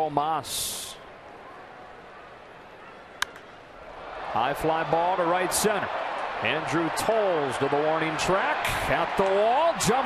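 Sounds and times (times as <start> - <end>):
ballpark crowd ambience: 0.0 - 10.0.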